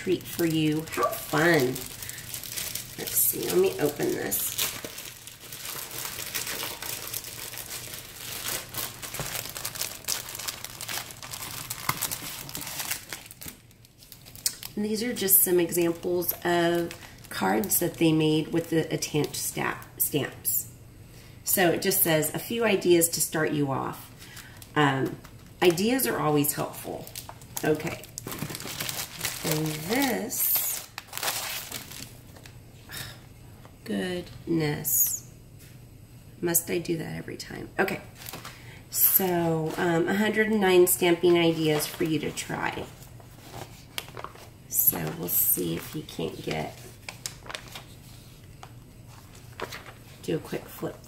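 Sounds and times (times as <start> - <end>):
plastic packaging crinkling: 0.0 - 19.9, 24.0 - 32.6, 38.1 - 50.6.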